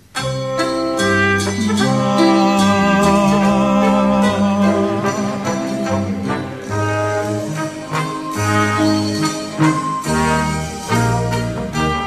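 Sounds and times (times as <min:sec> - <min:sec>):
brass band playing held chords: 0:00.0 - 0:12.0.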